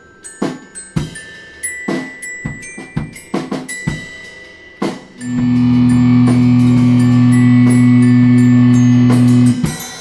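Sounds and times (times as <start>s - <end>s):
loud held low note: 5.2s - 9.6s.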